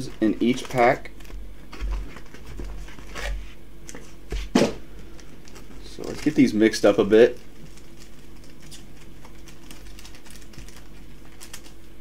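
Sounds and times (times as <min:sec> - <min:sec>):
foil wrappers crinkling: 0:00.0 - 0:03.4, 0:05.0 - 0:11.9.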